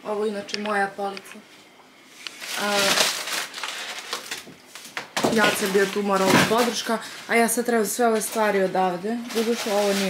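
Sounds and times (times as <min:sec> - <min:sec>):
rustling and crinkling handling noise: 0:00.7 - 0:10.0.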